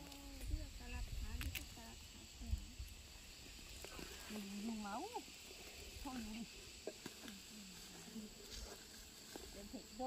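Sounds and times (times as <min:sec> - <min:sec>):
people talking: 0:00.0 - 0:02.8, 0:03.9 - 0:05.3, 0:06.0 - 0:08.8, 0:09.4 - 0:10.0
insects droning: 0:00.0 - 0:10.0.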